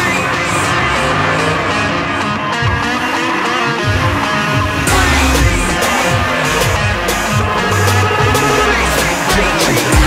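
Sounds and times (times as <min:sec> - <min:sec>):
car engines revving: 0:00.0 - 0:10.0
guitar music: 0:00.0 - 0:10.0.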